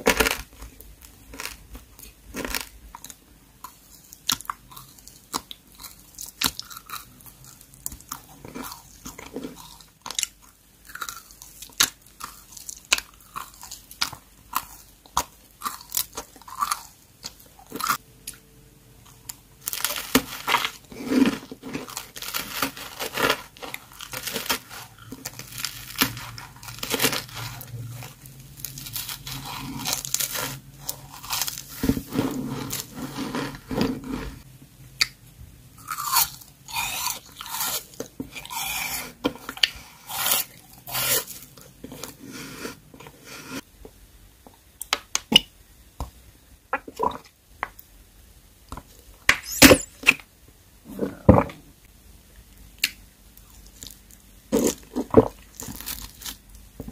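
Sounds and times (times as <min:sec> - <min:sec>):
chewing candy: 0:01.3 - 0:18.4.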